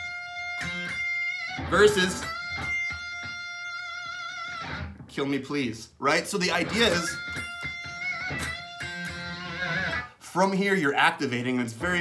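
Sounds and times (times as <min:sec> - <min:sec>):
electric guitar note ringing: 0:00.0 - 0:05.0, 0:06.5 - 0:10.2.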